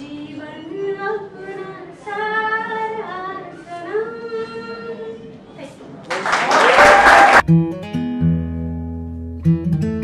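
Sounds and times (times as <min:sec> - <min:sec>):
woman singing unaccompanied: 0:00.0 - 0:05.4.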